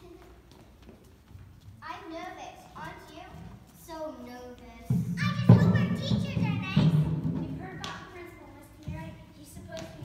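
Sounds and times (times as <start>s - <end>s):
children's footsteps on stage: 0.0s - 10.0s
child's voice: 1.8s - 10.0s.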